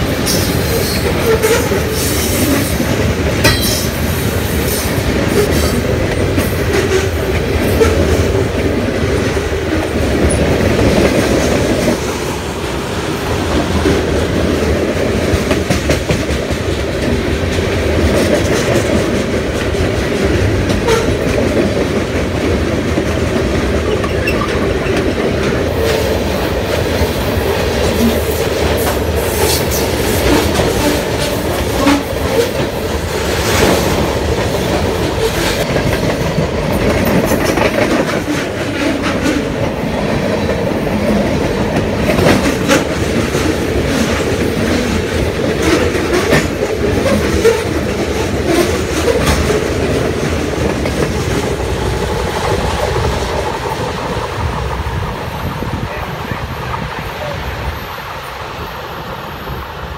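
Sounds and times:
freight train rumbling past: 0:00.0 - 0:59.9.

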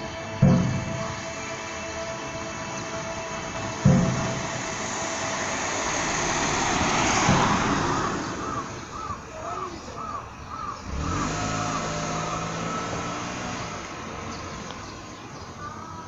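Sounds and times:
clock tower music held tones: 0:00.0 - 0:06.9
passing traffic: 0:00.0 - 0:16.0
low booms: 0:02.2 - 0:09.3.

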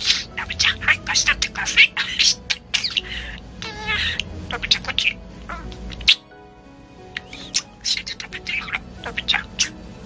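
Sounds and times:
budgerigar chattering: 0:00.0 - 0:06.4, 0:07.1 - 0:10.0
faint music: 0:00.0 - 0:10.0.

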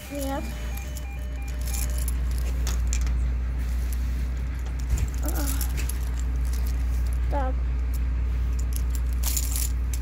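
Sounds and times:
key fobs jangling on a keyring: 0:00.1 - 0:03.1.

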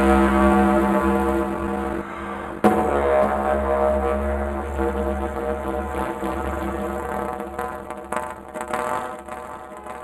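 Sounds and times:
didgeridoo drone: 0:00.0 - 0:10.0.

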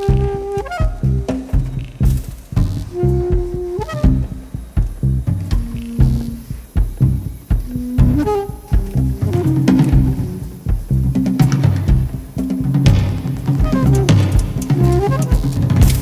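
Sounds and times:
drums: 0:00.0 - 0:16.0
live band playing: 0:00.0 - 0:16.0
pulsing bass line: 0:00.0 - 0:16.0.

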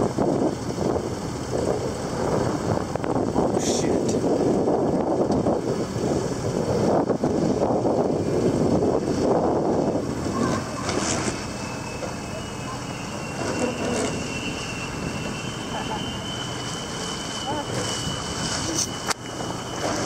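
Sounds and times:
high hydrofoil whine: 0:00.0 - 0:20.0
water rushing along hull: 0:00.0 - 0:20.0
wind buffeting microphone: 0:00.0 - 0:20.0.

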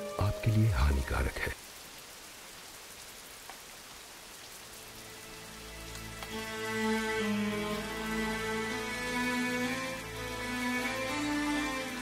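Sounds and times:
steady hiss like rain: 0:00.0 - 0:12.0.

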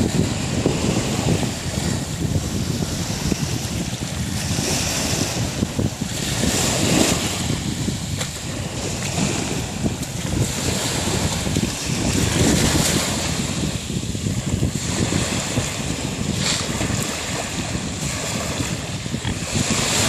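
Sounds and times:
waves washing over gravel beach: 0:00.0 - 0:20.0
wind buffeting microphone: 0:00.0 - 0:20.0.

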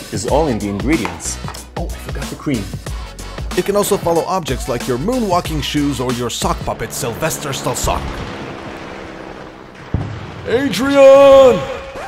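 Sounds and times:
steady rushing noise: 0:05.8 - 0:10.0.

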